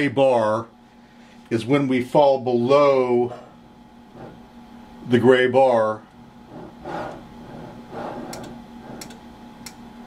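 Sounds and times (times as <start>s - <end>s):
faint electrical hum: 0.0s - 10.0s.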